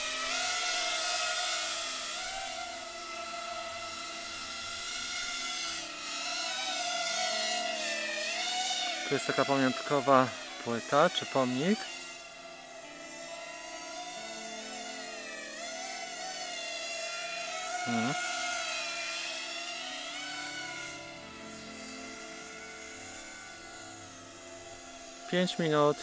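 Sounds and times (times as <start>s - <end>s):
drone motors whining: 0.0s - 26.0s.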